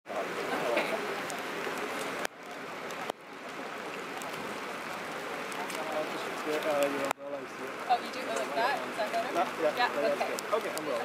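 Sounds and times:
rain on a wet street: 0.1s - 11.0s.

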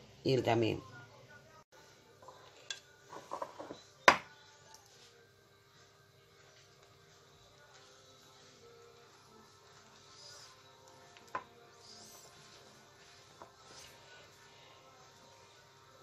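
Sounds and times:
light knocks on stone: 4.1s - 4.3s.

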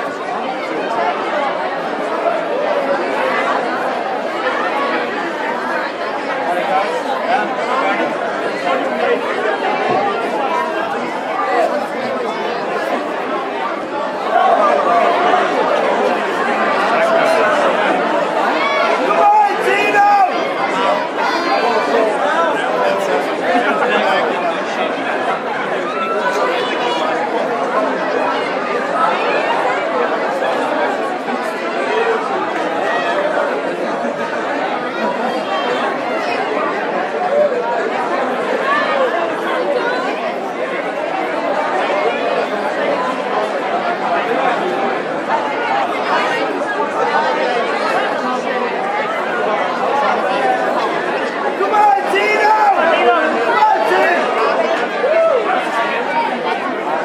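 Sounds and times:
crowd chatter: 0.0s - 57.0s.

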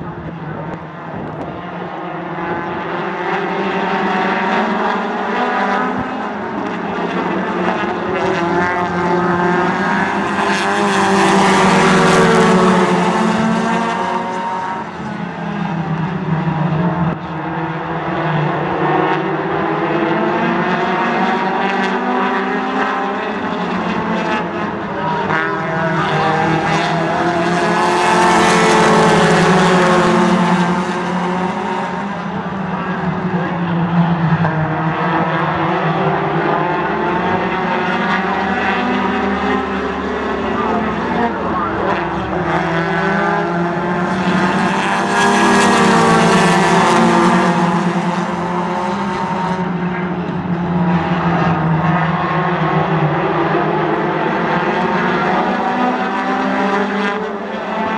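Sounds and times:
race car engines roaring: 0.0s - 57.9s.

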